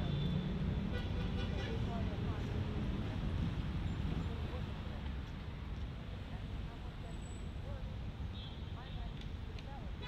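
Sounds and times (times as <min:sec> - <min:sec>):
distant city traffic rumble: 0:00.0 - 0:10.0.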